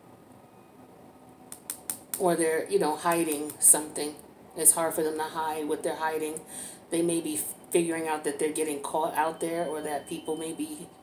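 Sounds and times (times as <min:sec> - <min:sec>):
sharp clicks: 0:01.5 - 0:02.2.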